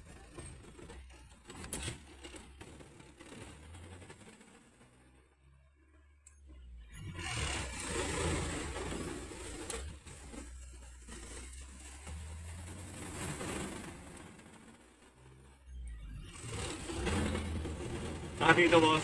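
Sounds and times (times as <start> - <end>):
truck engine running: 0.0 - 19.0
road noise: 7.0 - 19.0.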